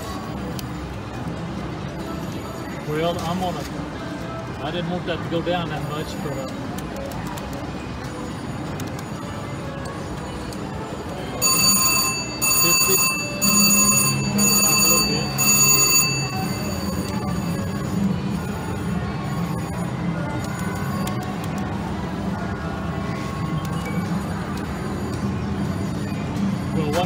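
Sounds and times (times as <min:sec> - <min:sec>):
slot machine win bell: 0:11.4 - 0:18.2
faint machine chimes: 0:11.4 - 0:21.0.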